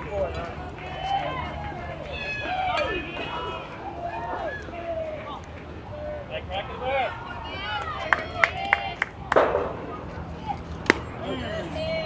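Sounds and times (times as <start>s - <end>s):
sharp crack: 10.8s - 11.2s.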